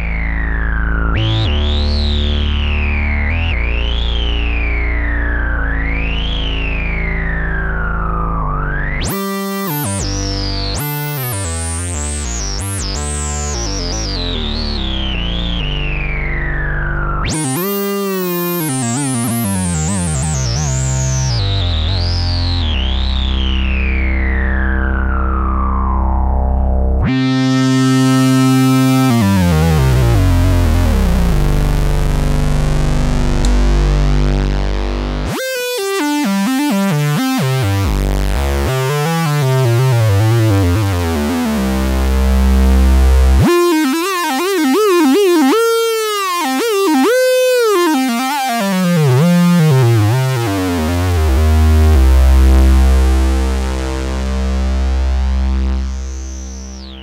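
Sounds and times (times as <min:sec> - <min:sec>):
synthesizer filter sweeps: 0:00.0 - 0:57.0.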